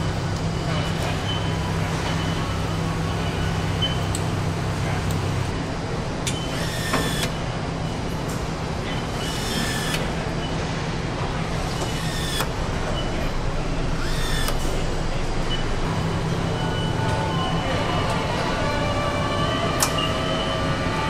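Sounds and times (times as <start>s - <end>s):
power nutrunner whirring: 6.3s - 7.4s, 9.1s - 10.2s, 11.6s - 12.6s, 13.9s - 14.7s.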